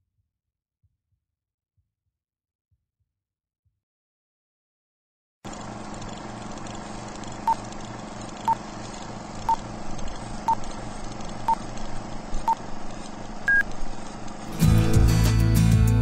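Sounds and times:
steady hum and hiss: 5.5 - 16.0.

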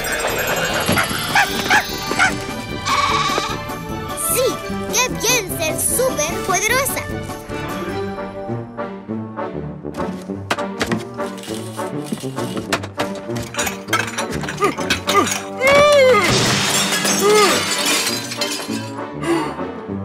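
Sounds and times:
cartoon music with whooping notes: 0.0 - 9.0
clattering crash hits: 12.4 - 19.0.

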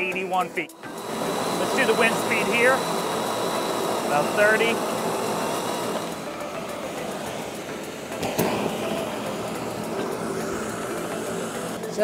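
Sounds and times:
blower running: 0.0 - 12.0.

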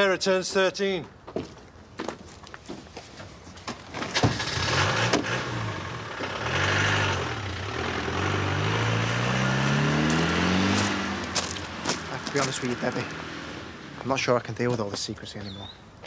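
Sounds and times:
car engine starting and accelerating: 4.0 - 14.1.

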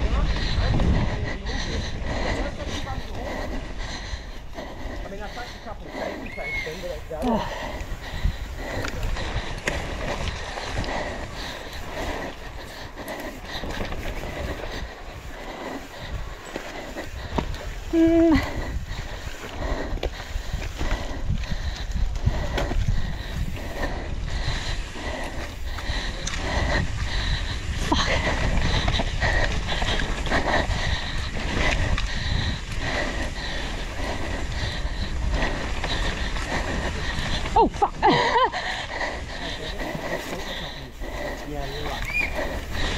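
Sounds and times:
low rumble of wind and tyres: 0.0 - 42.9
bike rattling and knocking: 7.1 - 14.9.

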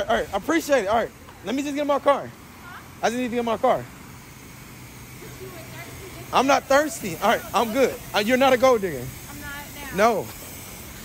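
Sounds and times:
pressure washer spraying water: 0.0 - 11.0.

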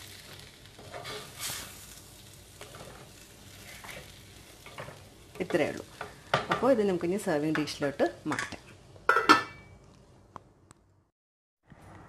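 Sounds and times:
metal lid clanking on a pot: 8.3 - 9.7.

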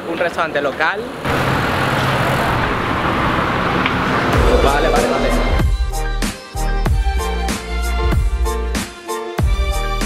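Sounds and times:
roadside traffic noise: 0.0 - 6.2
vehicle engine hum: 1.1 - 6.0.

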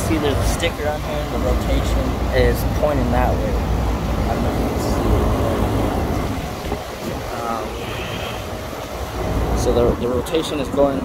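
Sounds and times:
wind rumble: 0.0 - 11.0.

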